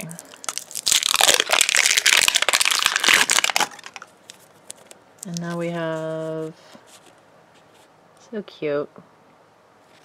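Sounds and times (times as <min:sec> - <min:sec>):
plastic wrapper crinkling: 0:00.0 - 0:07.2.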